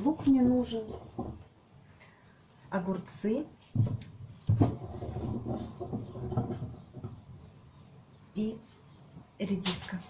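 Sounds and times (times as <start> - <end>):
rustling and rummaging: 3.6 - 7.2.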